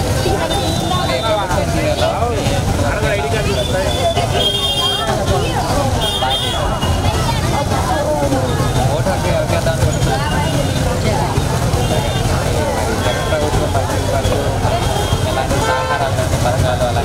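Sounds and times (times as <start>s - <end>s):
woman talking into microphone: 0.0s - 1.7s, 4.0s - 9.0s, 10.0s - 15.2s
background chatter: 0.0s - 17.0s
street traffic rumble: 0.0s - 17.0s.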